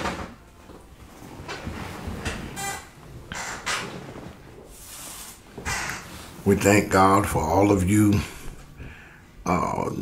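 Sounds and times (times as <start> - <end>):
leather chair creaks and scuffs: 1.0 - 6.4.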